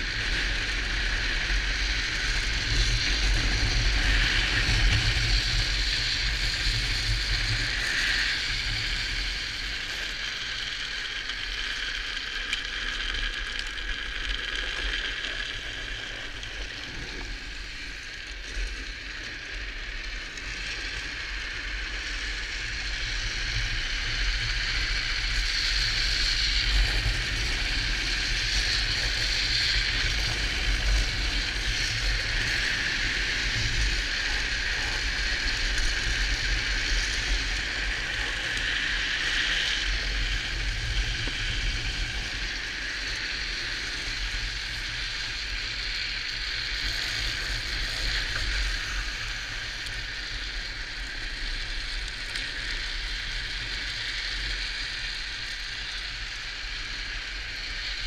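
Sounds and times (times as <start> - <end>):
wheels hissing on asphalt: 0.0 - 58.0
wind rumbling on microphone: 0.0 - 58.0.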